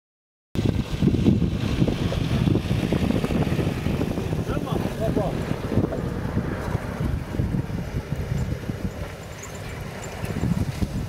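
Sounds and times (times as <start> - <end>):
wind buffeting microphone: 0.6 - 11.0.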